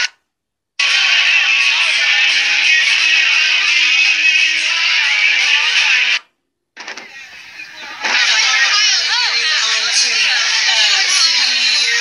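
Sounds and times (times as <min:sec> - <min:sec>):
room noise: 0:00.0 - 0:12.0
crowd noise: 0:00.8 - 0:12.0
loud voices in a crowd: 0:06.8 - 0:12.0.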